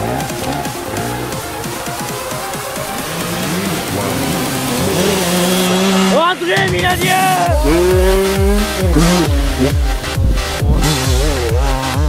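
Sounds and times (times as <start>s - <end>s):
background music: 0.0s - 12.0s
dirt bike engine revving: 0.0s - 12.0s.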